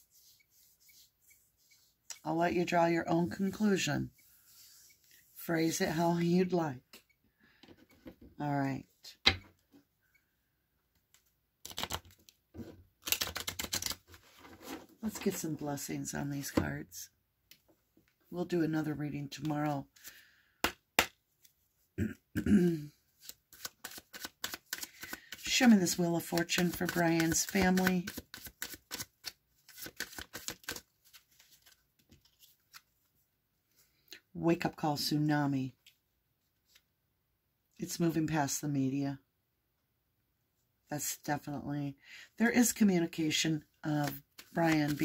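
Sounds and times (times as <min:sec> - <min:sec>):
cards being shuffled: 0:11.2 - 0:12.3, 0:13.0 - 0:14.8, 0:23.2 - 0:33.0, 0:43.9 - 0:45.0.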